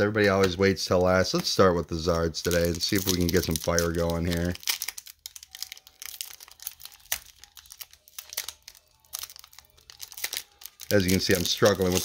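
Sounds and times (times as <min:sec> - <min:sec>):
foil wrapper crinkling and tearing: 0:02.4 - 0:12.0.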